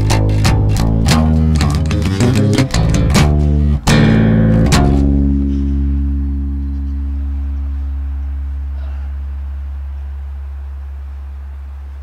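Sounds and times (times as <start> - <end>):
electric bass low note ringing: 0.0 - 12.0.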